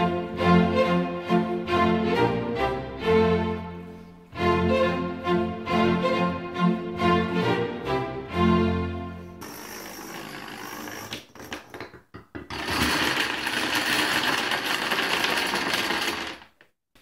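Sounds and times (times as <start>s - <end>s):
plastic dominoes clattering: 9.4s - 16.7s.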